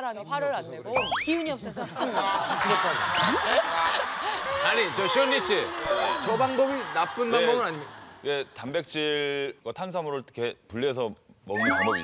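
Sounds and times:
group of people laughing: 1.7s - 8.2s.

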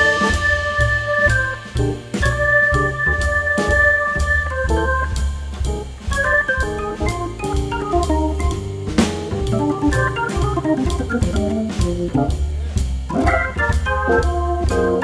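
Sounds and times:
drums on cymbals: 0.0s - 15.0s
low bass line: 0.0s - 15.0s
organ runs: 0.0s - 15.0s.

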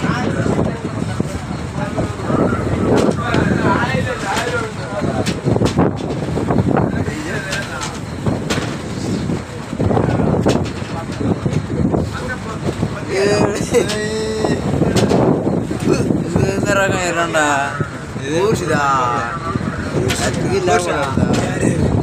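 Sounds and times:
rough sea: 0.0s - 22.0s
wind on microphone: 0.0s - 22.0s.

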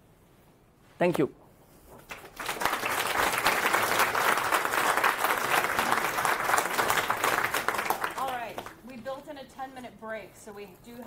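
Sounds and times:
audience applauding: 2.0s - 8.8s.

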